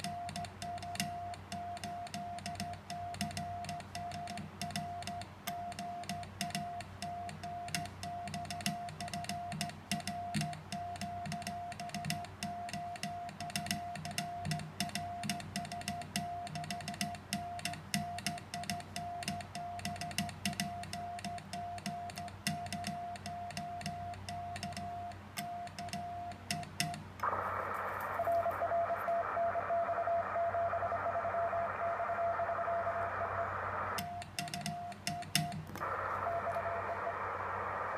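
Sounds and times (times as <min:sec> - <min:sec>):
morse code sidetone beeps: 0:00.0 - 0:37.9
hissy radio band noise: 0:27.2 - 0:35.0, 0:35.6 - 0:37.9
weak morse signal: 0:27.2 - 0:37.9.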